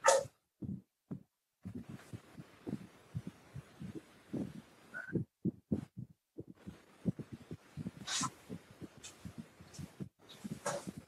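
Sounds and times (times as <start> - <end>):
soft low thuds: 0.1 - 11.0
sharp sniffs: 8.0 - 8.4.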